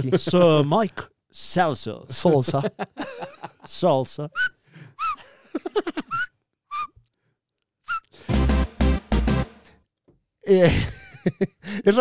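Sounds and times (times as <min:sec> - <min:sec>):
people laughing: 0:02.2 - 0:03.7, 0:05.3 - 0:06.2, 0:10.6 - 0:11.7
high-pitched squeaky chirps: 0:06.1 - 0:06.9.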